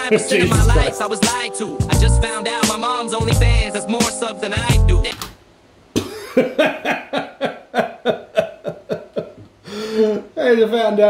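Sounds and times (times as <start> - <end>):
man laughing hard: 0.0 - 1.0, 6.0 - 10.1.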